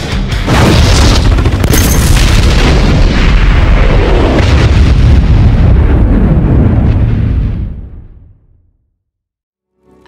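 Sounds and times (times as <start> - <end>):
trailer music: 0.0 - 1.8
explosion booms: 2.0 - 8.4.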